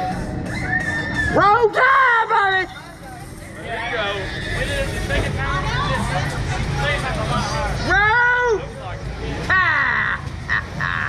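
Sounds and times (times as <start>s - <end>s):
indistinct talking and chatter: 0.0s - 11.0s.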